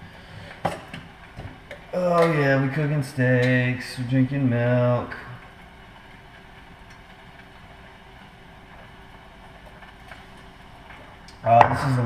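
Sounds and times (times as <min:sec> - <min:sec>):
faint steady tones: 0:00.0 - 0:12.0.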